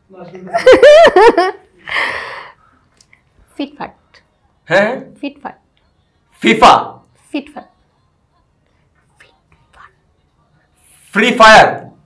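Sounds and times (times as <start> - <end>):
soft whispering: 8.6 - 11.2.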